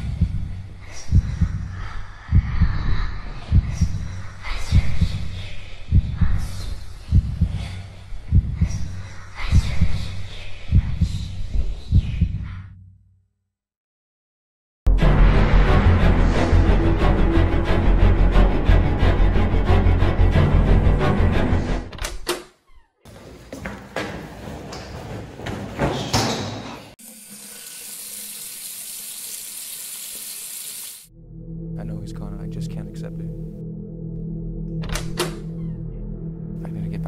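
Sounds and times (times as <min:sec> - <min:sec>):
heartbeat double thumps: 0:00.0 - 0:05.3, 0:05.9 - 0:06.5, 0:07.1 - 0:08.9, 0:09.5 - 0:10.1, 0:10.7 - 0:11.3, 0:11.9 - 0:12.6
sink tap running water: 0:27.0 - 0:31.1
low hum: 0:31.1 - 0:37.0.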